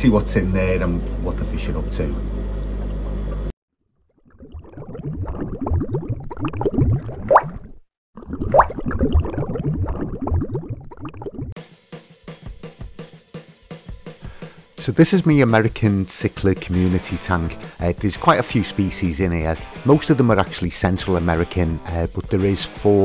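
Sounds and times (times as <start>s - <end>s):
intro jingle with drums and cymbals: 11.6s - 20.0s.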